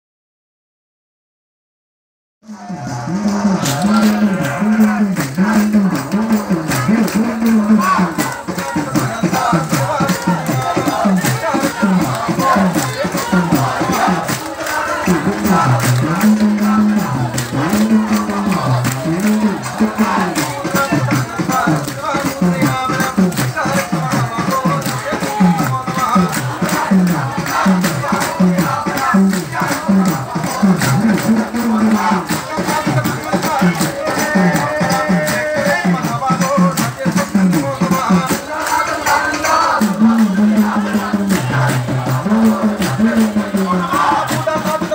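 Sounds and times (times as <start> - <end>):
men chanting in unison: 2.5 - 44.9
rattling percussion beat: 2.5 - 44.9.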